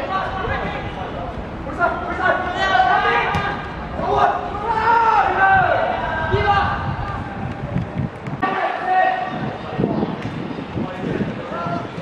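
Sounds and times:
football being kicked: 3.2 - 3.6.

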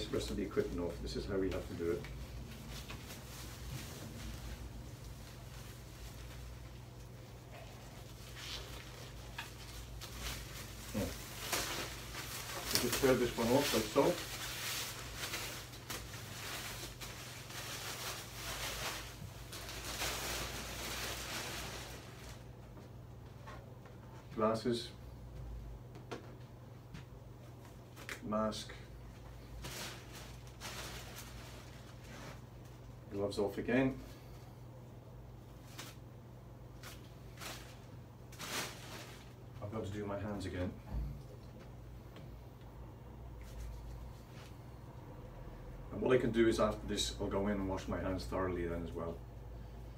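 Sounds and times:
disposable gown rustling: 0.0 - 23.0, 29.0 - 33.1, 36.7 - 40.5
low steady hum: 0.0 - 49.9.

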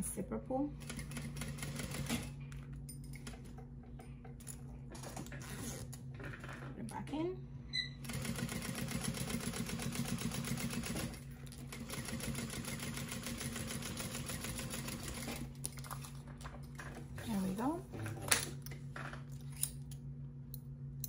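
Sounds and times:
sewing machine stitching: 8.0 - 15.5.

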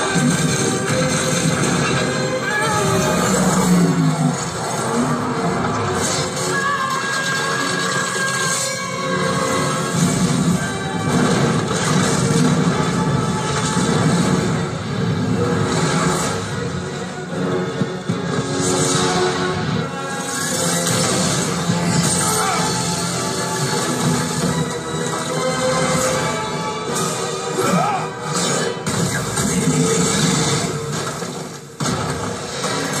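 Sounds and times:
crashes and explosions: 0.0 - 33.0
dramatic film music: 0.0 - 33.0.

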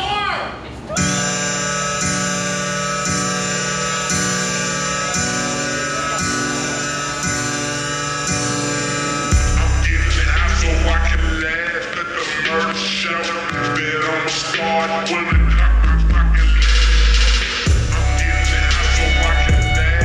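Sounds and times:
hip-hop backing track: 1.0 - 20.0
deep heavy bass: 9.3 - 11.6, 15.3 - 20.0.

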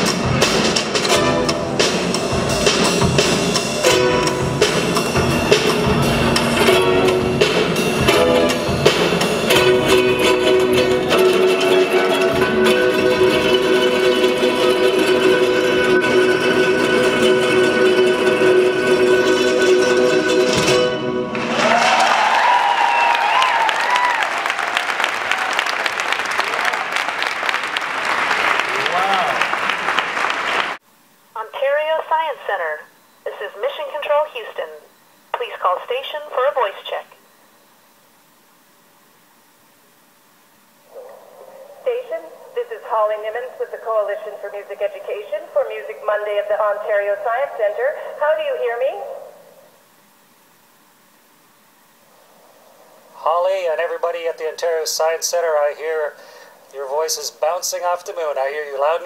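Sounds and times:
ukulele ensemble with upright bass: 0.1 - 3.2, 3.8 - 21.6
crowd applauding and cheering: 21.3 - 30.8.

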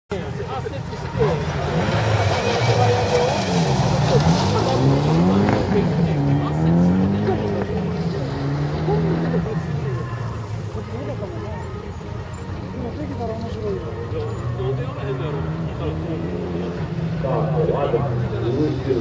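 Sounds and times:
rally car engine revving: 1.0 - 11.3, 13.4 - 19.0.

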